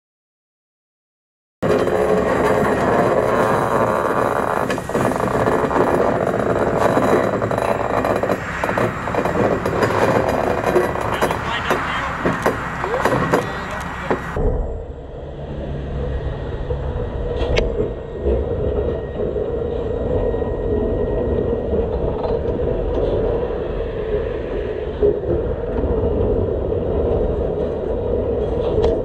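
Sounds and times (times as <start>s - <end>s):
train clatter: 1.6s - 14.4s
electric locomotive humming: 1.6s - 29.0s.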